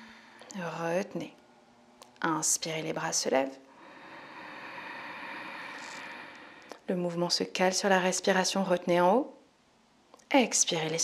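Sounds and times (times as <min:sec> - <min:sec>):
woman breathing in deeply: 0:00.0 - 0:00.5, 0:03.7 - 0:06.8
woman speaking: 0:00.5 - 0:01.4, 0:02.2 - 0:03.6, 0:06.9 - 0:09.4, 0:10.3 - 0:11.0.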